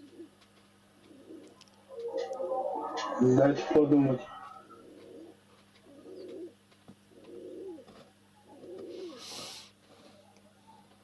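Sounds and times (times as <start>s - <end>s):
pigeon cooing: 1.0s - 1.6s, 4.6s - 9.4s.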